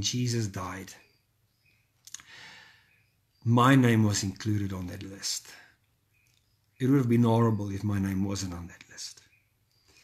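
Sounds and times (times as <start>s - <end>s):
faint mouth click: 2.0s - 2.3s
soft breath in: 2.2s - 3.0s.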